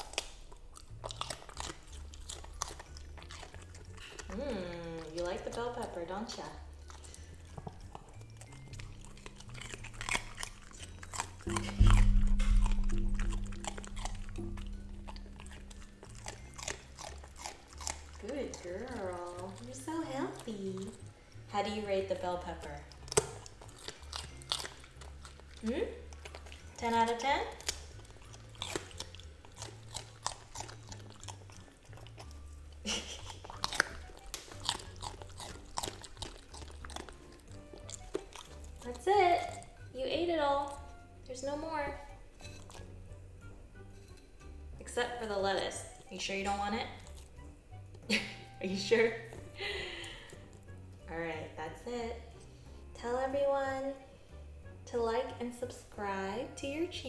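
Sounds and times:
teeth clicking: 0.0s - 39.9s, 45.9s - 48.6s
puppy crunching pepper: 0.0s - 44.2s, 44.8s - 51.2s
background music with bass: 8.9s - 18.4s.

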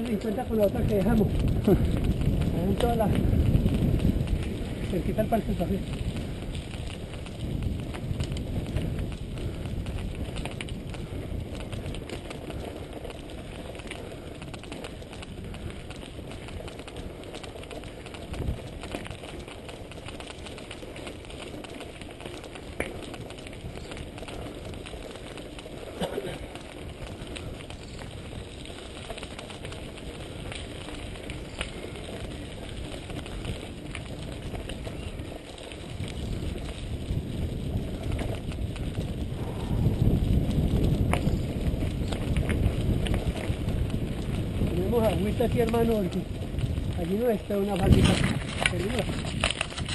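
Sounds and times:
bike tyres rolling on gravel: 0.0s - 49.9s
wind on microphone: 0.0s - 49.9s.

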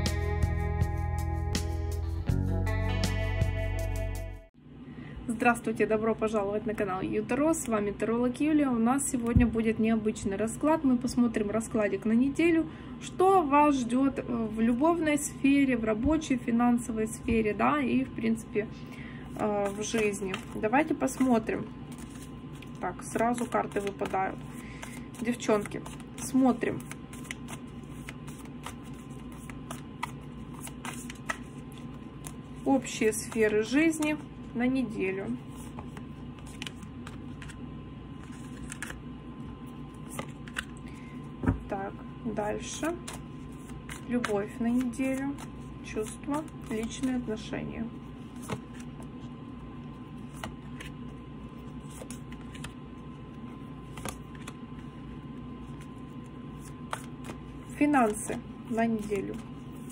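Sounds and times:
steady low hum: 4.5s - 59.9s
cards being shuffled by hand: 19.3s - 37.6s, 38.2s - 41.7s, 42.6s - 59.9s.

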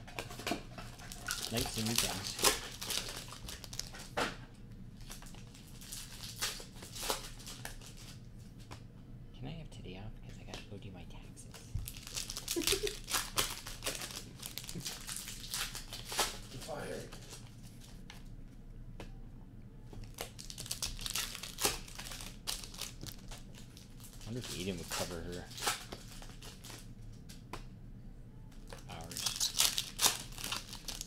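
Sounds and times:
foil wrappers crinkling and tearing: 0.1s - 4.2s, 5.0s - 8.2s, 11.6s - 18.0s, 20.0s - 26.9s, 28.5s - 31.0s.

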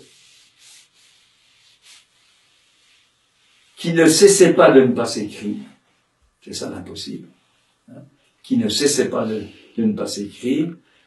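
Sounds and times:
faint short soft hisses: 0.0s - 3.9s.

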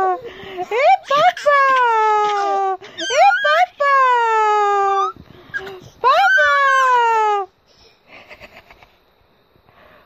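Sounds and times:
baby wailing: 0.8s - 3.8s, 4.9s - 7.4s
baby squealing: 0.9s - 3.9s, 5.0s - 7.1s.

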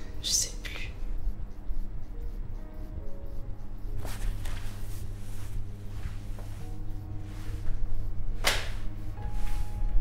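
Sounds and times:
low film score drone: 0.0s - 4.7s, 5.3s - 10.0s.

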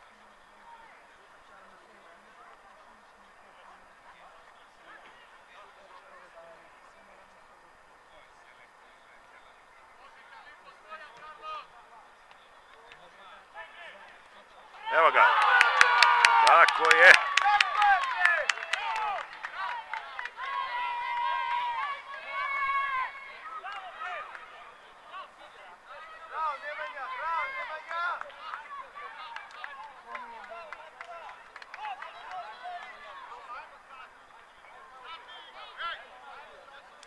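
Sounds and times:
people shouting and cheering: 14.7s - 34.1s
sharp claps: 15.2s - 20.6s, 29.3s - 32.4s.

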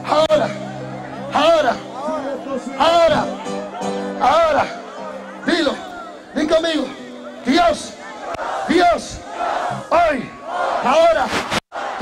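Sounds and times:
man shouting prayer: 0.0s - 9.2s
crowd praying aloud: 0.0s - 12.0s.

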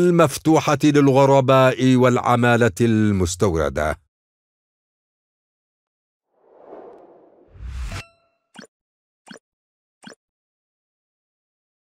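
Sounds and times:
whoosh into deep hit: 6.4s - 8.0s.

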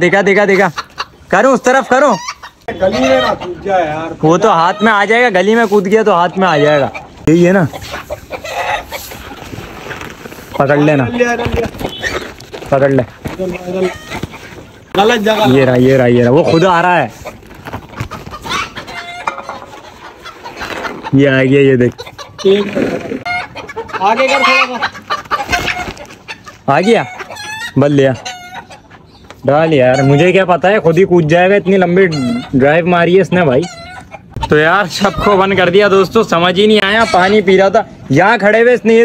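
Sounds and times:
chicken clucking: 0.2s - 9.6s, 10.4s - 37.6s.

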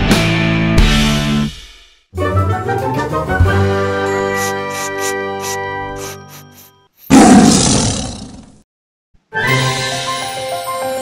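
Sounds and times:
chiming music jingle: 3.6s - 4.9s
loud roar sound effect: 7.1s - 8.6s.

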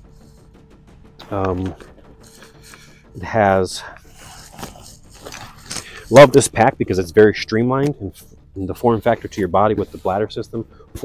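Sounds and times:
rustling of nylon gear: 1.3s - 7.4s.

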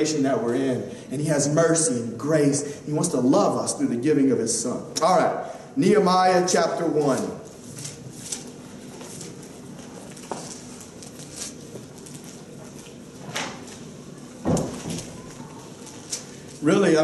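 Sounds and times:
book pages rustling: 7.0s - 16.7s
thump: 14.4s - 15.1s.

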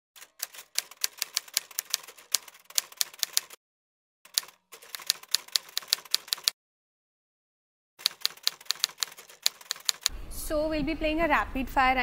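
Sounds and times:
typewriter keystroke clacks: 0.2s - 3.6s, 4.3s - 6.6s, 8.0s - 10.1s.

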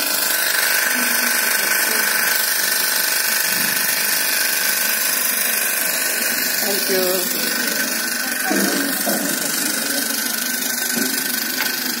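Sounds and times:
small motor whining: 0.0s - 12.0s.

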